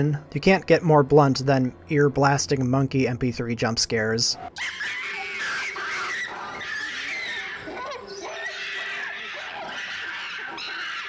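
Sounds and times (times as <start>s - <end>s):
monkey screeching: 4.6s - 11.0s.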